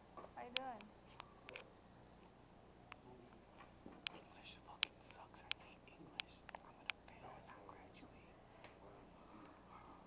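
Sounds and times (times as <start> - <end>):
sharp clicks: 4.0 - 7.2
faint whispering: 4.1 - 10.0.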